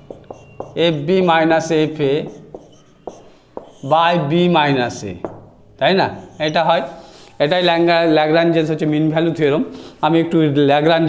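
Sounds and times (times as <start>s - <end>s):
marker tapping: 0.0s - 4.1s, 5.1s - 5.6s
marker scratching on whiteboard: 0.0s - 4.6s, 6.1s - 7.8s
person speaking: 0.0s - 10.4s.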